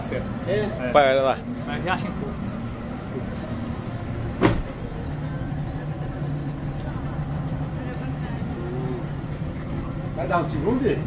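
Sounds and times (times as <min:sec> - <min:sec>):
boat engine humming: 0:00.0 - 0:11.0
sharp knock: 0:04.4 - 0:04.7.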